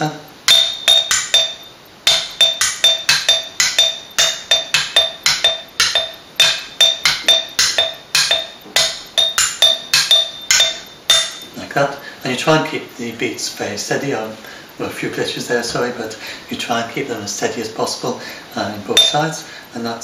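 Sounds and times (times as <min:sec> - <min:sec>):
sticks striking glass jars: 0:00.5 - 0:11.6, 0:19.0 - 0:19.3.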